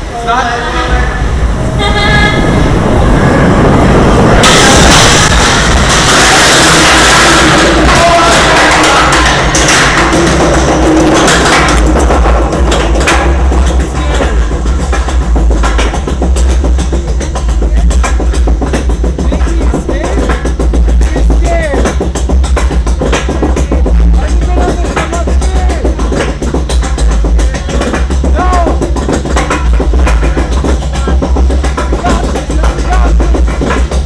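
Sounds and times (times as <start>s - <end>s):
roller coaster wheels rumbling: 0.0s - 34.0s
rapid clacking of coaster chain: 4.4s - 34.0s.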